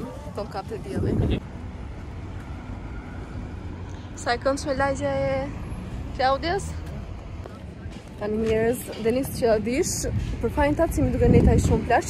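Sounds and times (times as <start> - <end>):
wind buffeting microphone: 0.0 - 5.3, 5.9 - 12.0
faint traffic noise: 0.0 - 12.0.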